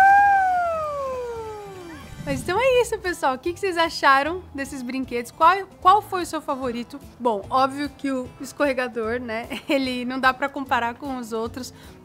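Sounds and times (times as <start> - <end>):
woman cheering: 0.0 - 2.0.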